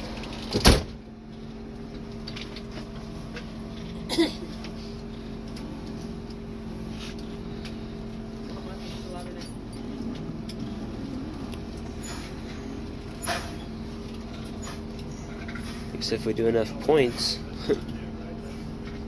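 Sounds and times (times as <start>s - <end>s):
bus engine idling: 0.0s - 19.0s.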